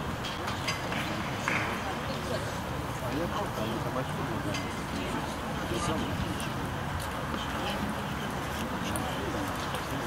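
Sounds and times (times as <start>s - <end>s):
low chatter of spectators: 0.0s - 10.0s.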